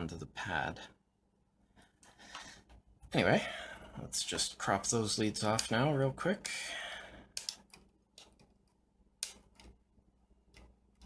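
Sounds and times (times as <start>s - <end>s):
side cutters snipping wire: 7.4s - 8.4s.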